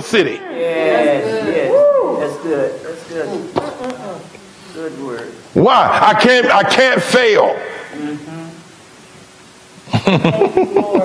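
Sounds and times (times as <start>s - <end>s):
people humming: 7.5s - 8.8s.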